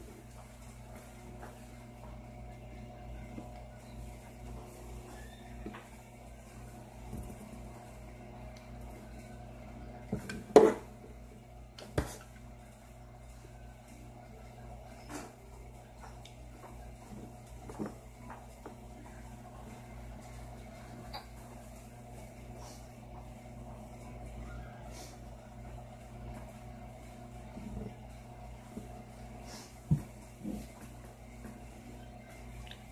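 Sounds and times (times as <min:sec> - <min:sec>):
steady low hum: 0:00.0 - 0:32.9.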